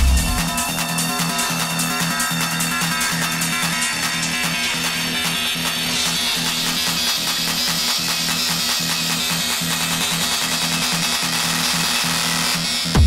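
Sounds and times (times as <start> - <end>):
heavy kick drum: 0.0 - 1.3
noisy high synth texture: 0.0 - 7.5
pulsing bass synth riff: 0.0 - 10.9.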